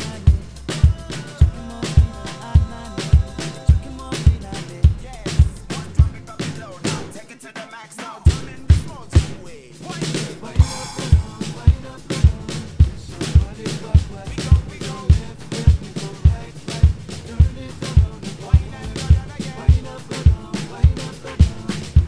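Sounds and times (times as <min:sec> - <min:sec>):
rising sweep: 0:00.0 - 0:07.1
bass drum beat: 0:00.0 - 0:07.3, 0:08.3 - 0:22.0
backing track music: 0:00.0 - 0:22.0
cymbals: 0:00.0 - 0:22.0
snare drum: 0:00.0 - 0:22.0.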